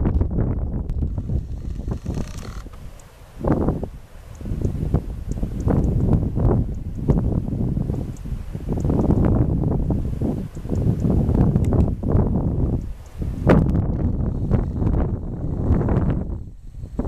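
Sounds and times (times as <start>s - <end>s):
wind buffeting microphone: 0.0s - 17.0s
faint high ticks: 1.8s - 3.2s, 4.2s - 7.2s, 8.0s - 9.3s, 10.4s - 12.0s, 12.7s - 14.0s.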